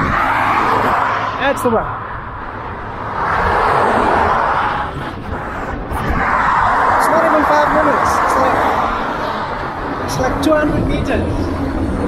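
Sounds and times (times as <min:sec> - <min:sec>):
low traffic rumble: 0:00.0 - 0:12.0
vehicle passing on highway: 0:00.0 - 0:12.0.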